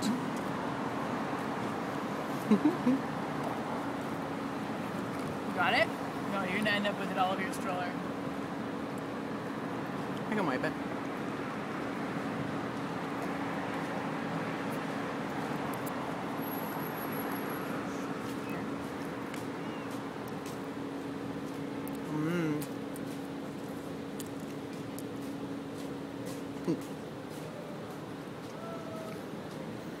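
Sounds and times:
street traffic hum: 0.0 - 30.0.

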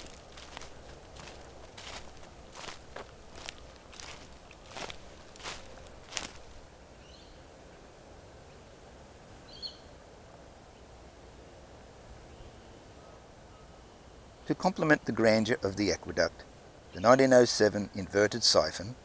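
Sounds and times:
footsteps on grass and concrete: 0.0 - 6.7.

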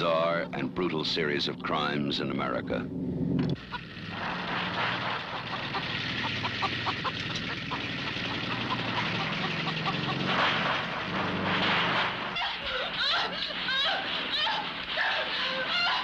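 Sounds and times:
noisy drone with low hum: 0.0 - 15.0.

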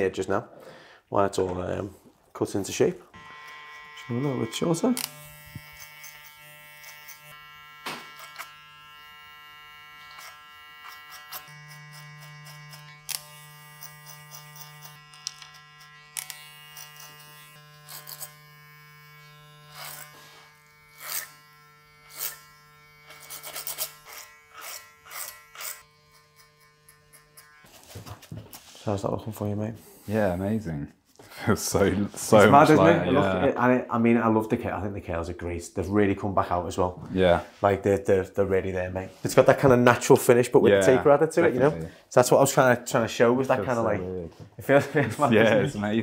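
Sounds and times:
electric hair clippers humming: 3.1 - 27.7
clipper blades cutting hair: 3.2 - 27.7.

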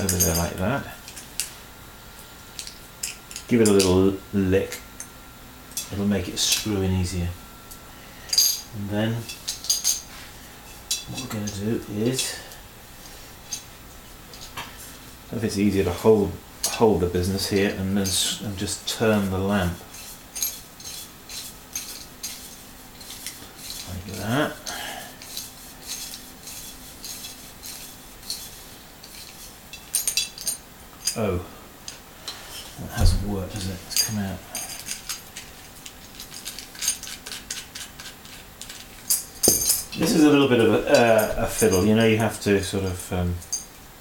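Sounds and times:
small metal clicks and clinks: 33.6 - 40.0.

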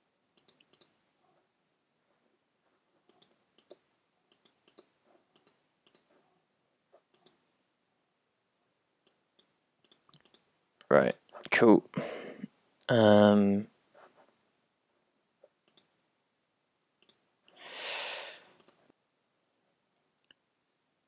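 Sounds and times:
computer mouse clicks: 0.4 - 1.0, 3.1 - 6.1, 7.1 - 7.4, 9.0 - 11.2, 15.6 - 15.9, 17.0 - 17.2, 18.6 - 18.8.

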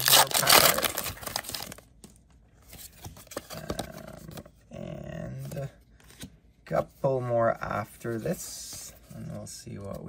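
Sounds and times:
foil wrapper crinkling and tearing: 0.0 - 1.8
wrapper rustling: 0.0 - 1.8.

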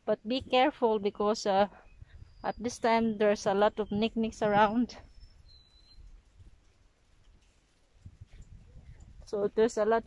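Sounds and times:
low wind rumble on microphone: 0.2 - 10.0.

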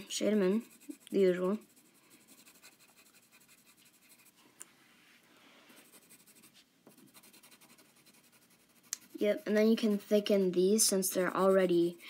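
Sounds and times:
pencil scratching on paper: 0.0 - 4.4, 5.7 - 12.0.

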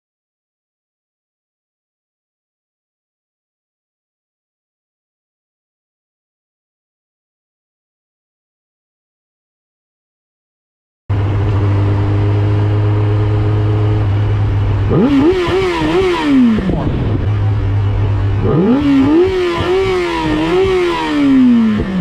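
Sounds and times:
motorcycle engine idling: 11.1 - 22.0
motorcycle engine revving: 11.1 - 22.0.

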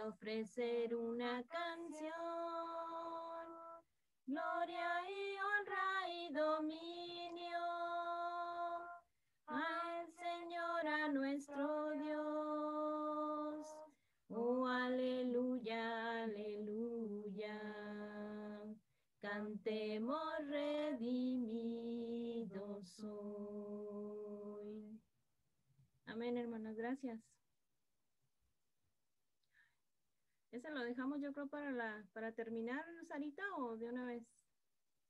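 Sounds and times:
woman singing unaccompanied: 0.0 - 25.0.

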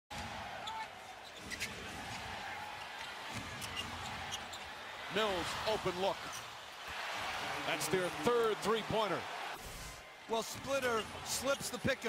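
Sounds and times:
arena crowd noise: 0.1 - 12.0
sneaker squeaks: 0.6 - 1.8, 3.6 - 4.7.

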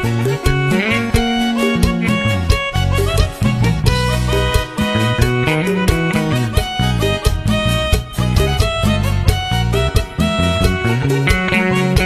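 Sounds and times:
guitar: 0.0 - 12.0
steady beat: 0.0 - 12.0
strong bass line: 0.0 - 12.0.

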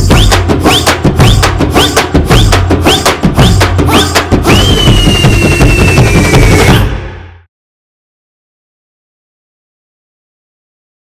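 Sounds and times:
jingle music with drum beat: 0.0 - 7.2.

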